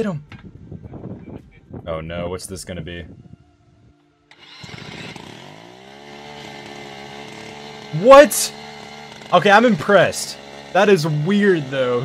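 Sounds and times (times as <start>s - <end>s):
electric angle grinder running: 4.3s - 12.0s.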